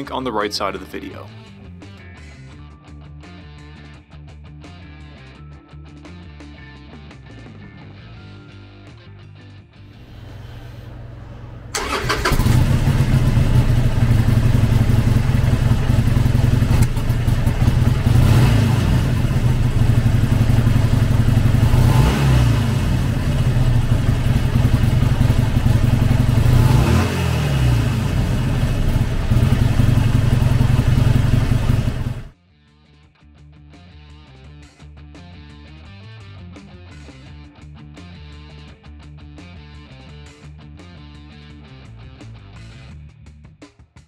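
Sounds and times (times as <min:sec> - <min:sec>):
motorcycle engine revving: 0:09.9 - 0:32.3
motorcycle engine starting and idling: 0:09.9 - 0:32.3.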